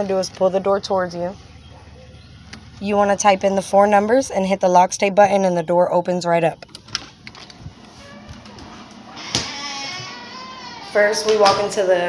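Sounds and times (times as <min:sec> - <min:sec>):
door creaking open: 0:06.9 - 0:11.8.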